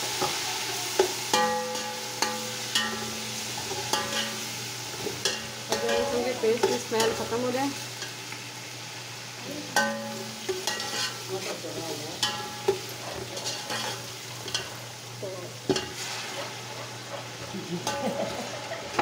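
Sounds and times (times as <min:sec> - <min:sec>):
onions sizzling in oil: 0:00.0 - 0:19.0
spatula clinking against pot: 0:01.0 - 0:04.4, 0:09.8 - 0:11.2
metal spatula scraping pot: 0:09.8 - 0:11.3, 0:12.2 - 0:14.8.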